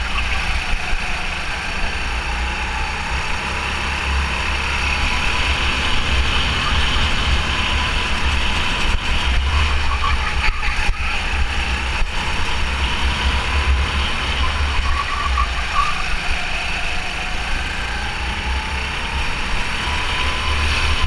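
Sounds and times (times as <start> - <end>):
go-kart engine racing: 0.0 - 21.0.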